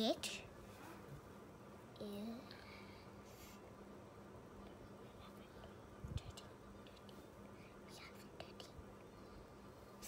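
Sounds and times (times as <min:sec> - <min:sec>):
faint low hum: 0:00.0 - 0:10.0
soft whispering: 0:04.6 - 0:10.0.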